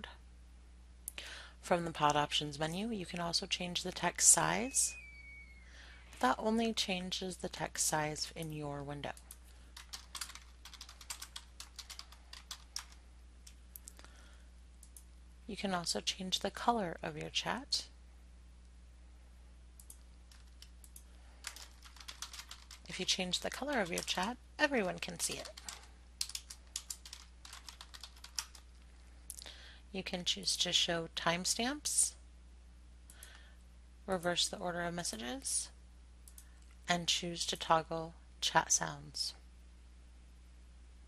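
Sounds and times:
steady low hum: 0.0s - 41.0s
computer keyboard typing: 9.1s - 13.0s, 19.8s - 28.7s.

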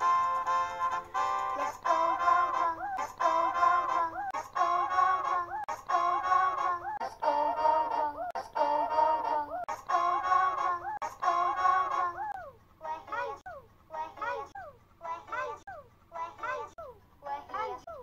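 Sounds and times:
characters singing over music: 1.3s - 12.4s.

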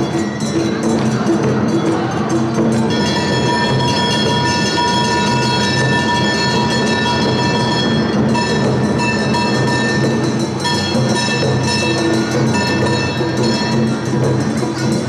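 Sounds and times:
street band music: 0.0s - 15.0s.

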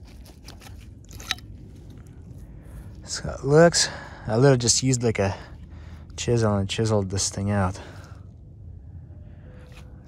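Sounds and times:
clicks and crunches of handling: 0.0s - 2.1s
low steady rumble: 0.0s - 10.0s.

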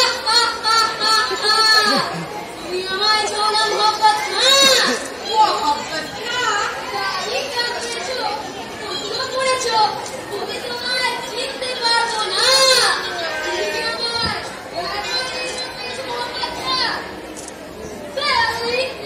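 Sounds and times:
audience chatter: 0.0s - 19.0s.

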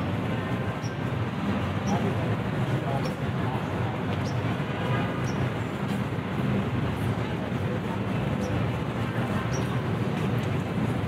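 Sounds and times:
city traffic rumble: 0.0s - 11.0s
street ambience: 0.0s - 11.0s.

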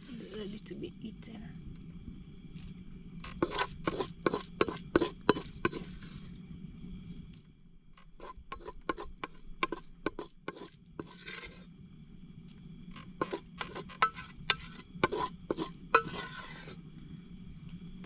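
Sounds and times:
wooden stick scraping metal pot: 3.2s - 6.3s, 8.0s - 11.7s, 12.9s - 16.9s.

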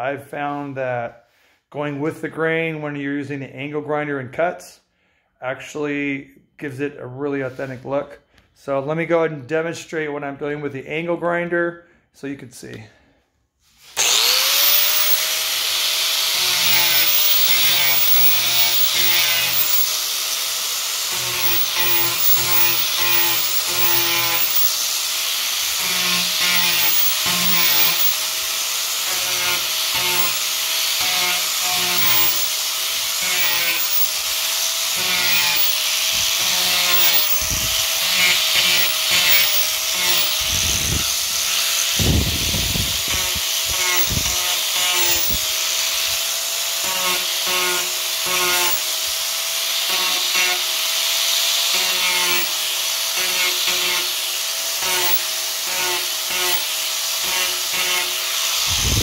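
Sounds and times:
angle grinder whining: 13.8s - 59.0s
grinder disc rasping on wood: 13.9s - 59.0s.

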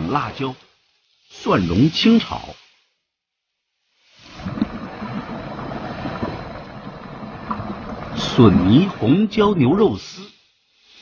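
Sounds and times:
food sizzling in hot oil: 3.7s - 4.4s, 10.4s - 11.0s.

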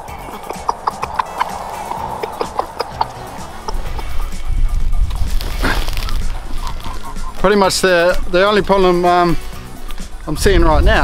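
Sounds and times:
wind rumbling on microphone: 0.0s - 9.0s, 9.8s - 11.0s
background music: 0.0s - 11.0s.

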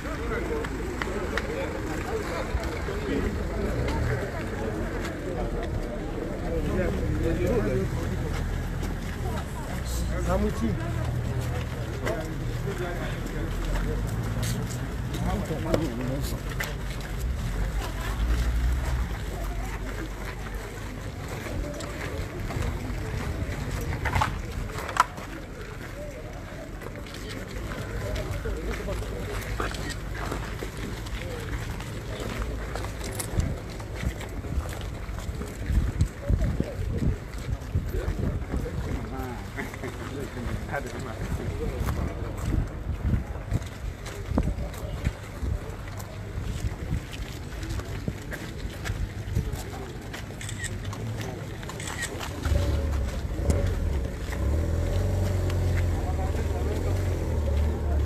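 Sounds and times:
indistinct crowd voices: 0.0s - 58.0s
wind rumbling on microphone: 33.3s - 39.2s, 41.2s - 49.6s.

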